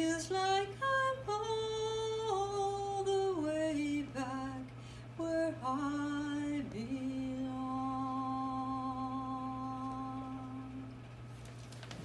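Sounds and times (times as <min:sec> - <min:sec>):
woman singing a long note: 0:05.2 - 0:11.0.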